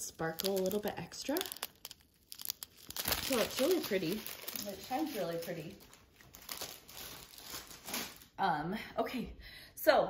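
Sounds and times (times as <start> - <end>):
plastic film crinkling: 0.0 - 8.4.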